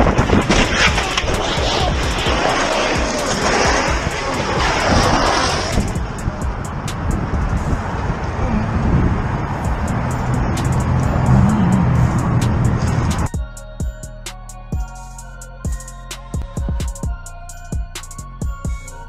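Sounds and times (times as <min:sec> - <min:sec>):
music track: 0:00.0 - 0:07.9, 0:09.6 - 0:19.0
low hum: 0:00.0 - 0:13.4
camera scraping along road: 0:00.2 - 0:08.4, 0:09.1 - 0:13.3.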